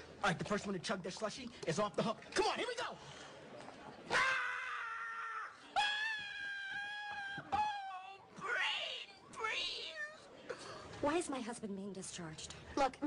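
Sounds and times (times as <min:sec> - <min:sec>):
man screaming: 0:04.1 - 0:09.1.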